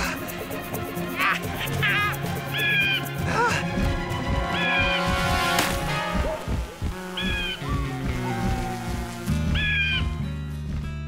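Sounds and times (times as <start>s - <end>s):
cartoon background music: 0.0s - 10.8s.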